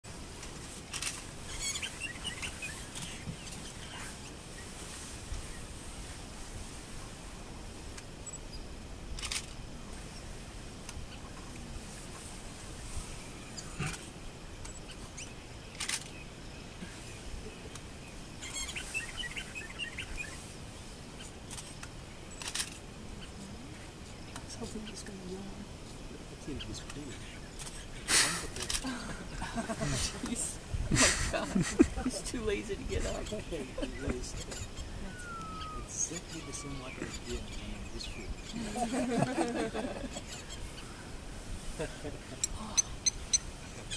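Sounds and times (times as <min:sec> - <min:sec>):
steady background hiss: 0:00.1 - 0:43.9
small birds chirping: 0:00.3 - 0:43.9.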